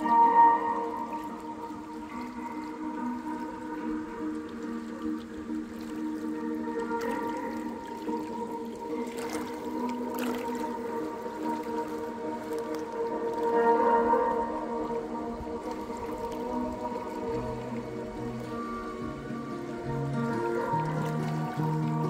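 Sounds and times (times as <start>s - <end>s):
lake waves lapping on rocks: 0.0s - 22.0s
slow ambient music: 0.0s - 22.0s.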